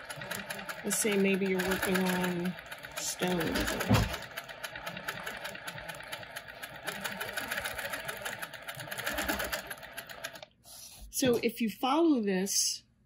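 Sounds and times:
sewing machine stitching: 0:00.0 - 0:10.5.

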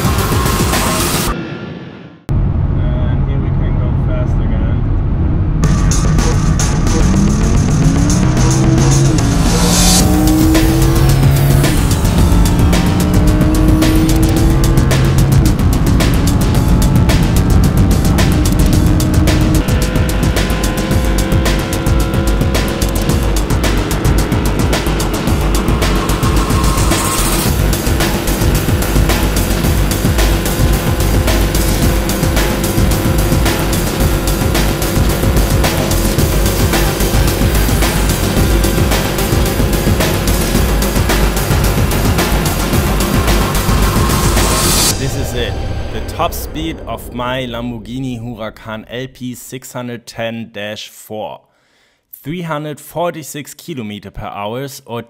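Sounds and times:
car engine at full throttle: 0:00.0 - 0:01.4, 0:02.2 - 0:48.2
music track: 0:00.0 - 0:01.4, 0:05.6 - 0:49.5
road and wind noise: 0:02.3 - 0:46.7.

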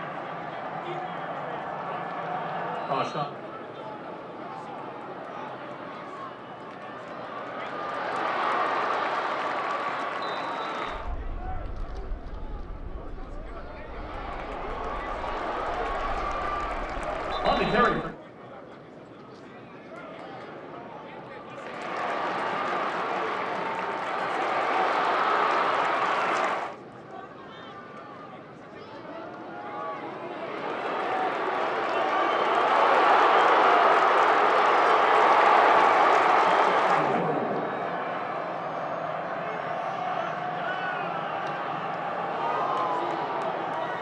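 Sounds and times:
stadium crowd cheering: 0:00.0 - 0:18.3, 0:19.5 - 0:44.0
quieter crowd noise: 0:00.0 - 0:44.0.

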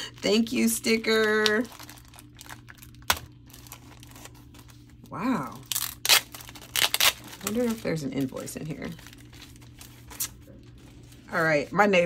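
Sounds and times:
plastic sleeve crinkling: 0:00.0 - 0:12.0.

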